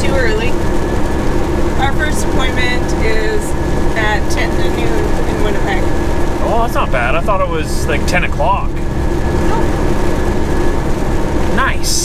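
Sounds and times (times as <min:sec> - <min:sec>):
diesel truck engine drone: 0:00.0 - 0:12.0.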